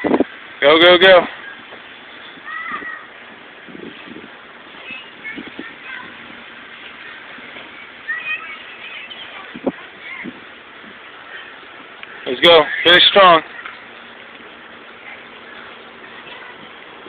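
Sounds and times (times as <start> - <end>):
faint outdoor background: 0.0 - 17.0.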